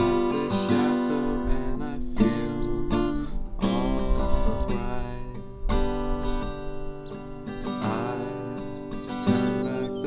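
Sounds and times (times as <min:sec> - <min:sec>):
acoustic guitar chords strummed: 0:00.0 - 0:10.0.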